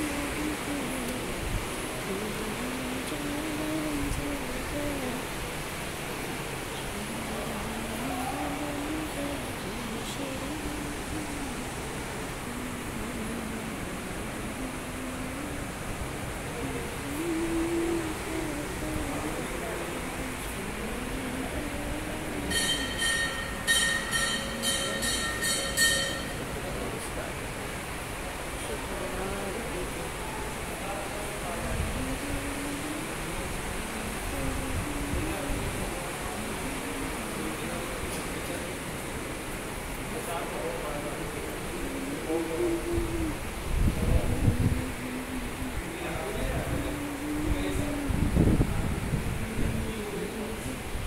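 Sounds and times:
person chanting low notes: 0.0 - 5.8, 7.0 - 26.4, 41.4 - 51.0
metal temple bell ringing: 22.5 - 26.7.

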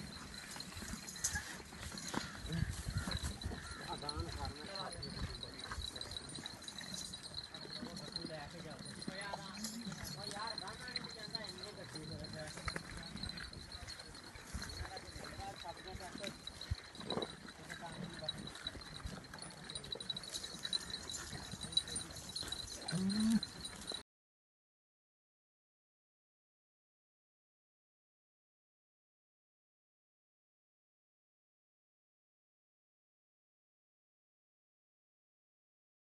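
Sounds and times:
hoof steps on dry ground: 0.0 - 24.0
goats bleating: 22.9 - 23.4.

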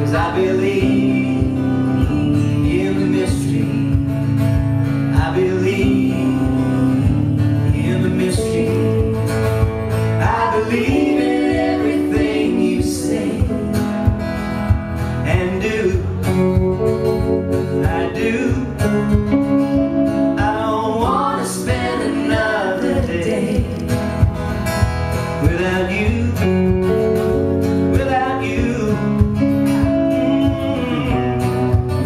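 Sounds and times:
acoustic band playing folk music: 0.0 - 32.0.

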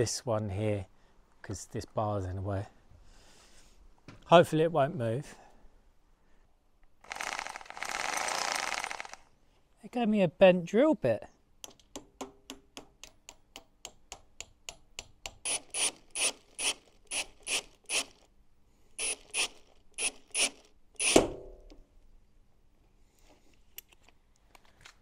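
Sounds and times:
drill ratcheting clicks: 7.0 - 9.3, 15.3 - 18.3, 19.0 - 21.2.

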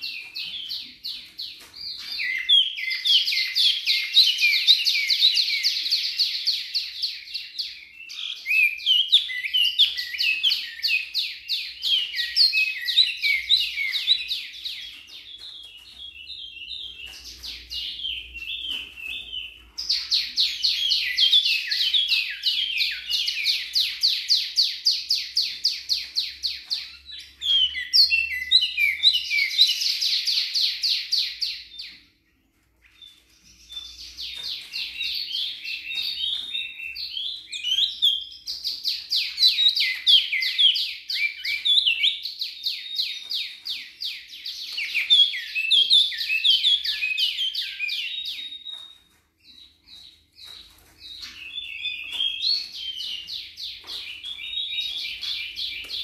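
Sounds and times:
songbird chirping: 0.0 - 56.0.

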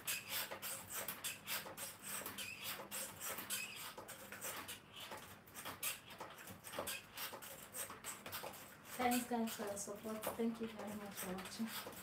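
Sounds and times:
stepper pedals squeaking: 0.0 - 12.0.

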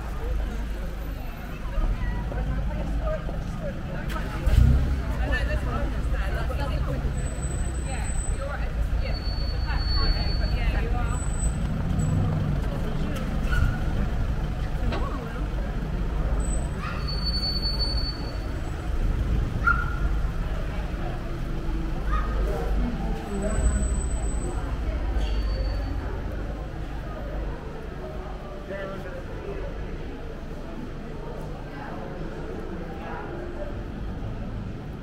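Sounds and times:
passers-by talking: 0.0 - 35.0
traffic engine rumble: 0.0 - 35.0.

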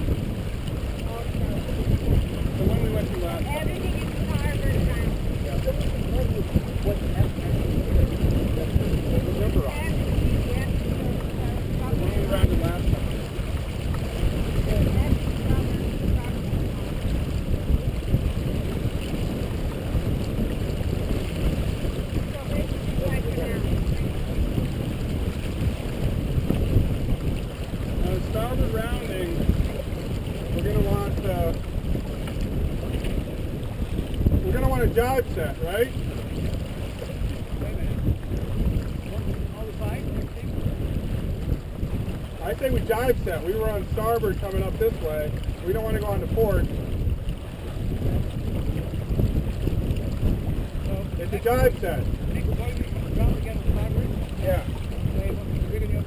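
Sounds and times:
water rushing along hull: 0.0 - 56.0
wind rumble on microphone: 0.0 - 56.0.

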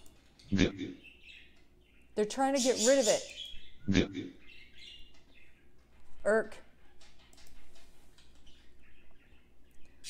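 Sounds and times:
faint bird chirps: 0.0 - 5.8.

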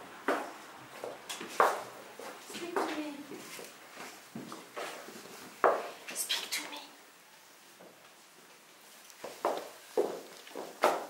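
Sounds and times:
footsteps on wooden floorboards: 0.2 - 6.2, 9.2 - 11.0.

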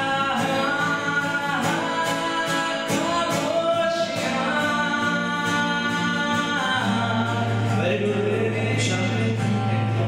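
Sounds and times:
acoustic guitar: 0.0 - 10.0
young man singing: 0.0 - 10.0.

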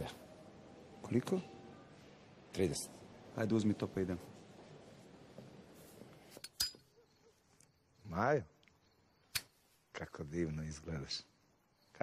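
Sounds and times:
sharp metallic click with ring: 6.4 - 6.9.

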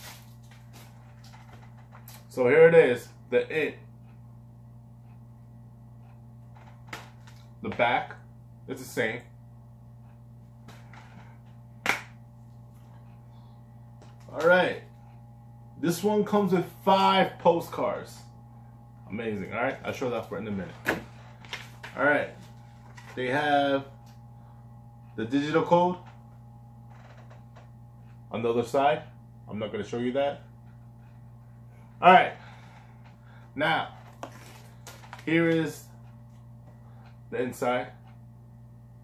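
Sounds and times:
low steady hum: 0.0 - 39.0.

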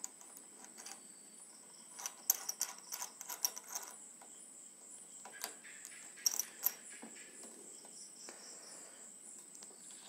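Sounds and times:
ratchet-like clicks: 1.9 - 4.0.

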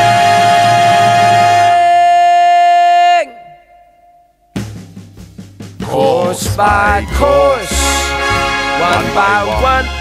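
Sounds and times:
man singing a long high note: 0.0 - 4.0
jazz band: 4.6 - 10.0.

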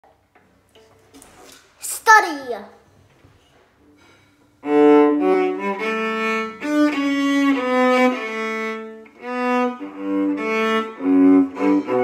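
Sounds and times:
child speaking: 1.8 - 2.9.

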